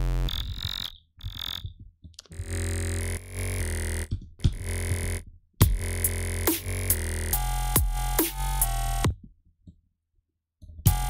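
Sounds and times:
buzzy synthesizer notes: 0:00.0 - 0:01.6, 0:02.3 - 0:09.1.

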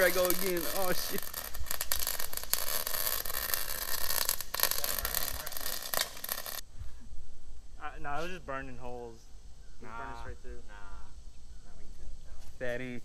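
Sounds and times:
welder arc crackling: 0:00.0 - 0:06.6.

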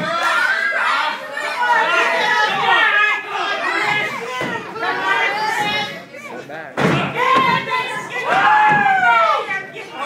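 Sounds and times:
spectators' voices: 0:00.0 - 0:10.0.

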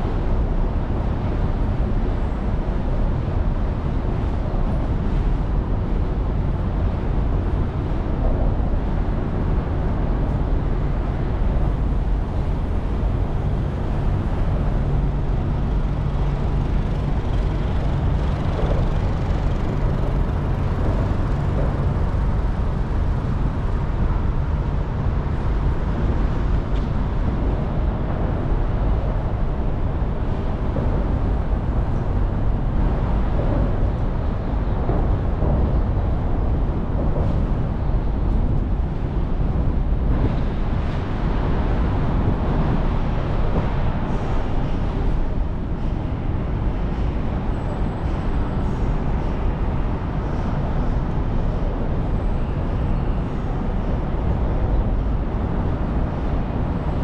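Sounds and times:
low engine hum: 0:00.0 - 0:57.0
low rumble of road traffic: 0:00.0 - 0:57.0.

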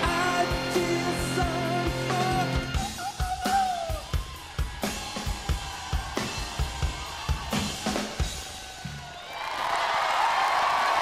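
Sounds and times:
bass drum beats: 0:00.0 - 0:09.1
band playing: 0:00.0 - 0:09.2.

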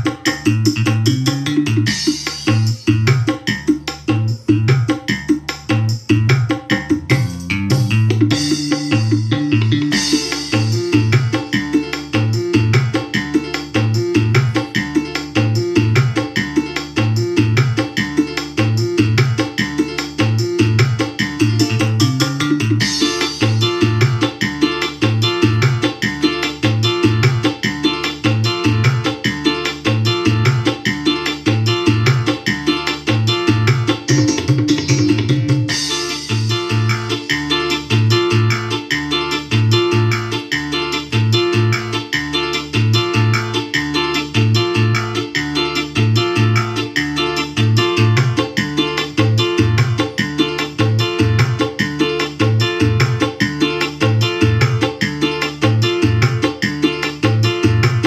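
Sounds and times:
loud music with bass line: 0:00.0 - 0:58.0.

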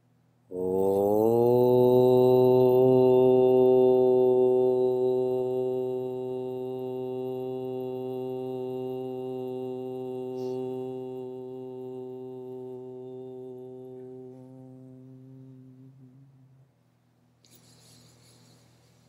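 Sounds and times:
man humming: 0:00.5 - 0:06.6, 0:07.7 - 0:16.6.

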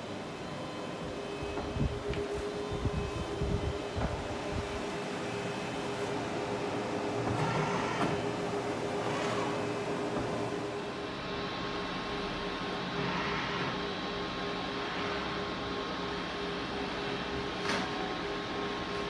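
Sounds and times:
printer mechanical hum: 0:00.0 - 0:19.0.

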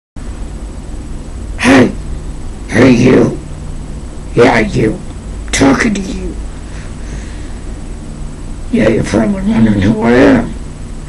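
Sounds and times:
low background hum: 0:00.2 - 0:11.0.

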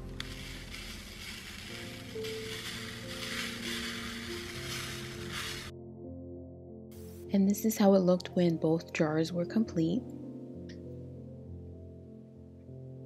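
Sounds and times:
glitter pattering onto glass: 0:00.0 - 0:05.7
soft background music: 0:00.0 - 0:13.0.

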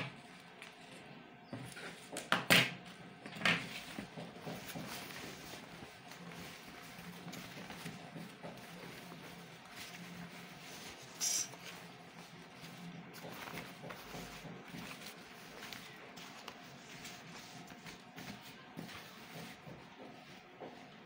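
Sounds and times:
fabric rustling and folding: 0:03.6 - 0:21.0.

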